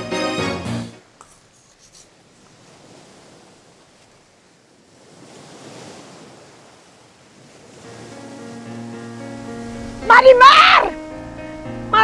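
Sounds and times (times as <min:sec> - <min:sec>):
sea waves washing in: 0:01.8 - 0:12.0
sustained music chord: 0:10.9 - 0:12.0.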